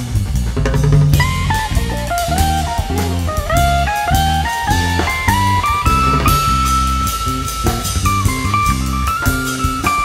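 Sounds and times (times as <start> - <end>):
jazz band playing: 0.0 - 10.0
electric guitar long note: 4.1 - 9.4.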